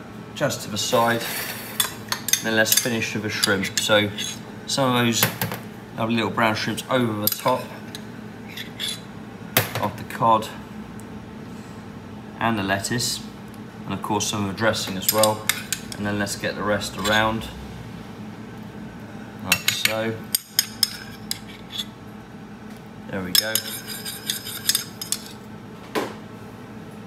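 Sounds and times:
metal spoon scraping plate: 0:01.2 - 0:04.4, 0:08.4 - 0:09.0, 0:20.4 - 0:22.0, 0:23.4 - 0:25.4
metal spoon clinking against pot: 0:15.0 - 0:16.0, 0:19.5 - 0:21.5, 0:23.4 - 0:25.4.

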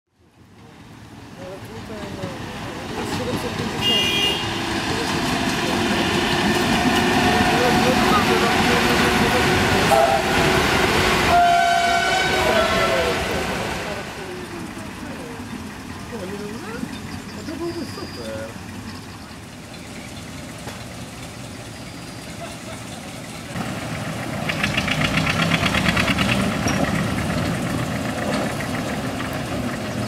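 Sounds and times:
train rumble: 0:00.4 - 0:30.0
train horn toots: 0:03.8 - 0:04.7, 0:09.7 - 0:14.0.

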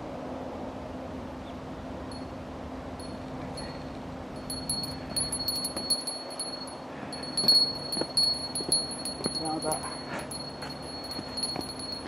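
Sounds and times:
metallic jingling: 0:03.0 - 0:12.0.

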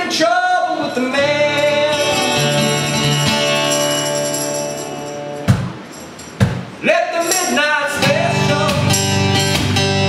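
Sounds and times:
acoustic guitar chords: 0:00.0 - 0:10.0
tambourine jingles: 0:01.9 - 0:09.6.

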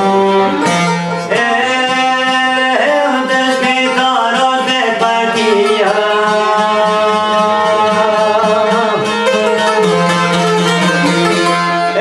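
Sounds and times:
plucked lutes playing folk music: 0:00.0 - 0:12.0.

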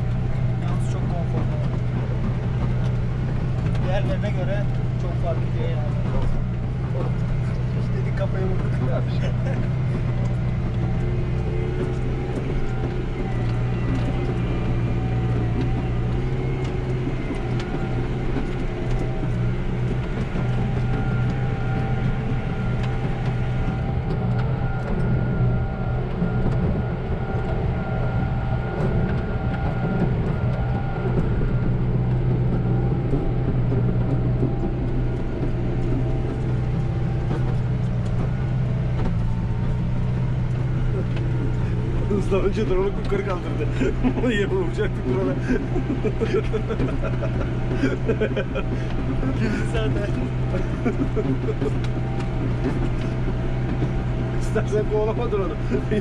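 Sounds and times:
tractor engine under load: 0:00.0 - 0:56.0.

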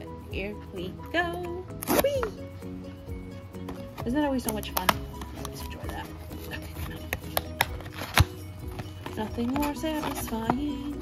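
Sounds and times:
soft background music: 0:00.0 - 0:11.0
cardboard box handled: 0:05.6 - 0:11.0.

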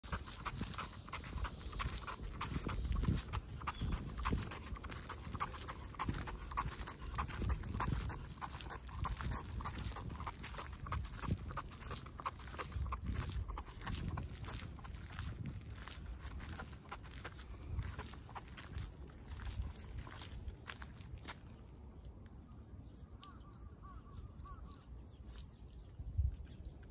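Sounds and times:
dog panting: 0:00.0 - 0:15.2
person's footsteps: 0:00.0 - 0:21.9
dog paws pattering on asphalt: 0:00.0 - 0:26.9.

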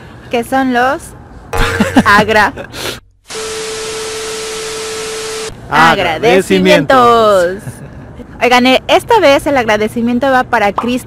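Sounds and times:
steady mid-pitched tone: 0:01.6 - 0:02.5
television static hiss: 0:03.3 - 0:07.3.

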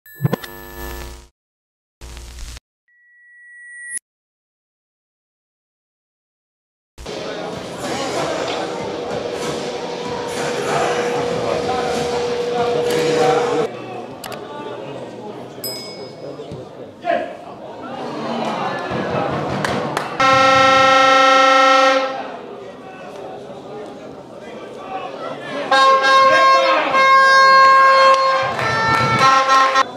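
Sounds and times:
electronic chord-like bursts: 0:07.1 - 0:13.7
spectators shouting: 0:07.1 - 0:13.7
steady high tone: 0:07.1 - 0:13.7
air horn blast: 0:08.1 - 0:13.7, 0:20.2 - 0:22.3, 0:25.7 - 0:29.9.

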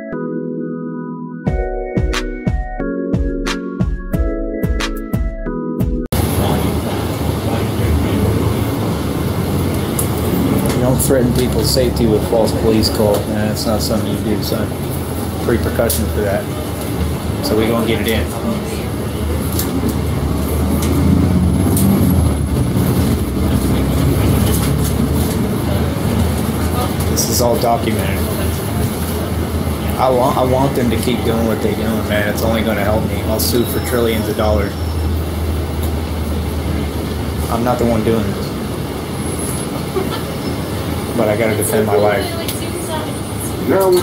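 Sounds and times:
bus engine rumble and hiss: 0:06.2 - 0:44.0.

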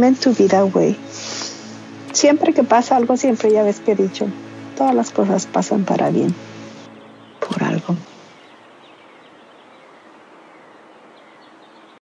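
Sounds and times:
outdoor ambience: 0:00.0 - 0:12.0
high bird chirps: 0:06.3 - 0:12.0.

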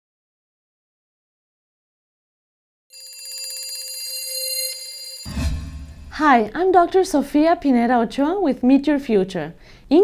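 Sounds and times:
alarm clock bell ringing: 0:02.9 - 0:06.4.

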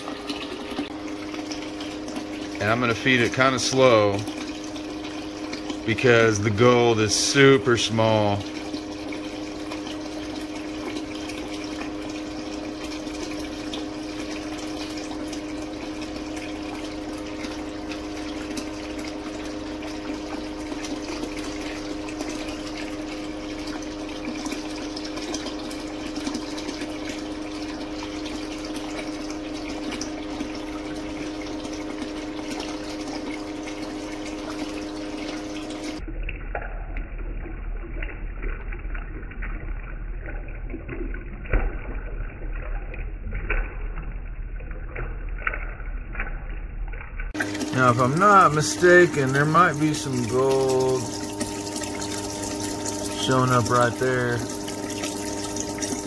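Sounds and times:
pump humming: 0:00.0 - 0:56.0
water running through sluice: 0:00.0 - 0:56.0.

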